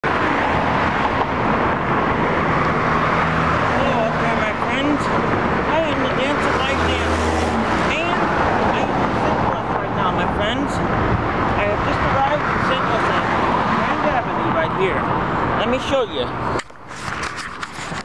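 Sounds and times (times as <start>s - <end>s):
city road traffic: 0.0s - 18.0s
passing vehicle engine hum: 0.0s - 18.0s.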